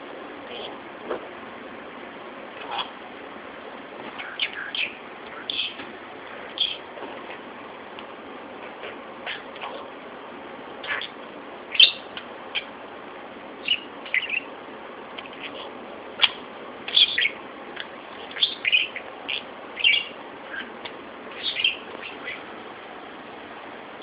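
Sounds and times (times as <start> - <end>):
budgerigar chirping: 4.2 - 5.8, 6.6 - 6.8, 9.3 - 9.5, 10.8 - 12.7, 13.6 - 14.5, 15.2 - 17.4, 18.3 - 22.5.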